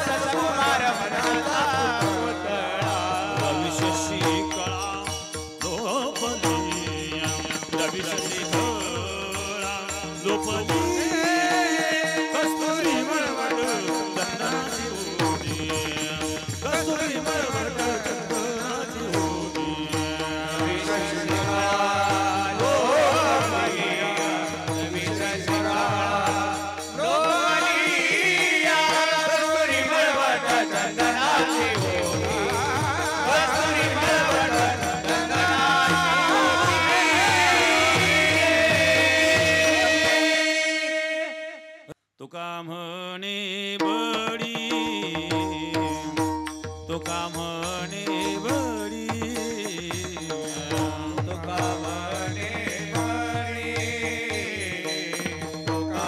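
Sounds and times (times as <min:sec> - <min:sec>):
man singing: 0:00.0 - 0:56.0.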